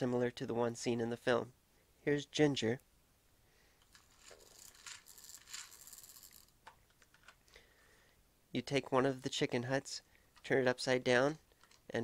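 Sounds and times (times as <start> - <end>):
plastic toy handling rustle: 3.8 - 7.5, 11.4 - 12.0.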